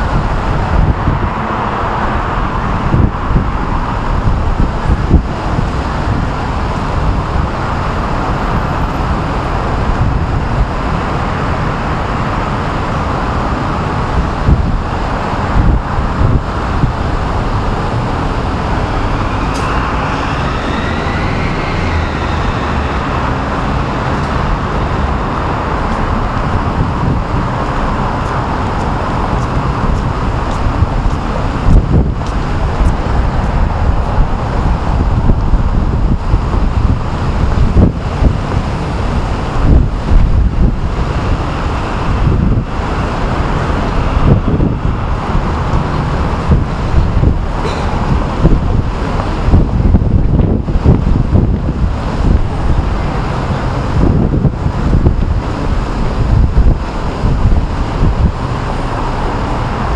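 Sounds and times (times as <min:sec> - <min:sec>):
city road traffic: 0:00.0 - 0:59.9
wind rumble on microphone: 0:00.0 - 0:59.9
vehicle tone rising and falling: 0:13.0 - 0:59.9.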